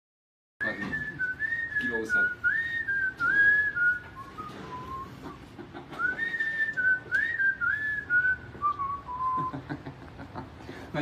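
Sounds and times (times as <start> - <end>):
person whistling a tune: 0.6 - 9.6.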